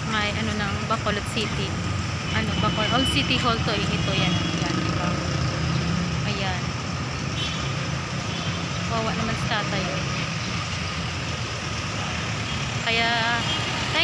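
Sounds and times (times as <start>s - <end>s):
voice: 0.0s - 1.8s, 2.4s - 5.4s, 6.2s - 6.7s, 8.9s - 10.2s, 12.8s - 14.0s
vehicle engines passing: 0.0s - 14.0s.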